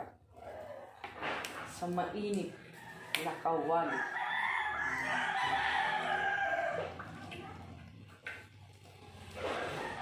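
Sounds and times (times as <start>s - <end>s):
rooster crowing: 2.8s - 7.0s, 9.4s - 10.0s.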